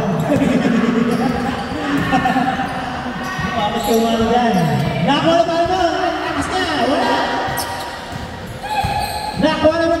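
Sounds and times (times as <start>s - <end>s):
basketball bouncing on wooden floor: 7.5s - 9.7s.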